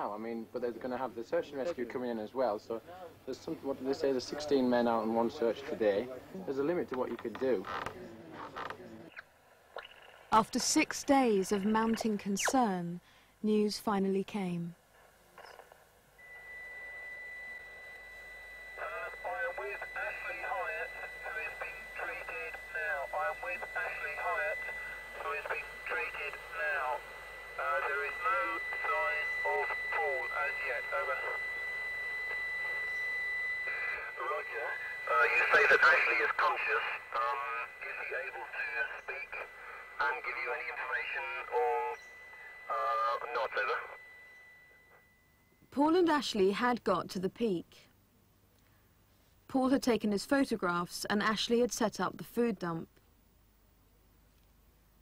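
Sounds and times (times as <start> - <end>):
radio static burst: 18.8 - 27.0, 27.6 - 31.4, 33.6 - 44.0
voice over two-way radio: 18.8 - 27.0, 27.6 - 31.5, 33.6 - 44.0.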